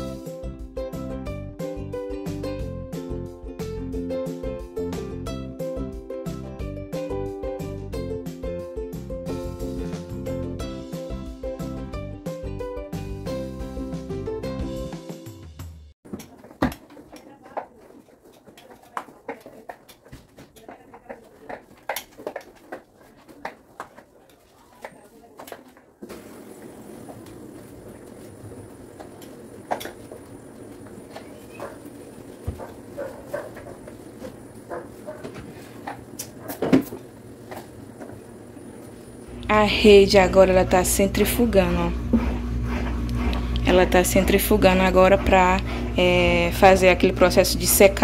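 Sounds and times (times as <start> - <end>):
mop clicking and knocking: 16.1 - 26.3, 28.9 - 38.2
light footsteps: 16.1 - 39.1
steady low hum: 26.2 - 48.0.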